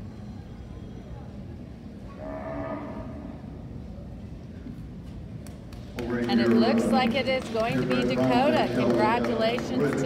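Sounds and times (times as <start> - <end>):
cow mooing: 2.1 - 3.4.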